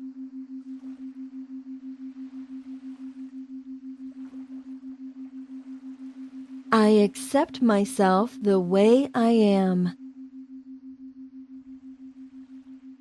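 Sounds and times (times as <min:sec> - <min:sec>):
pulsing low pure tone: 0:00.0 - 0:13.0.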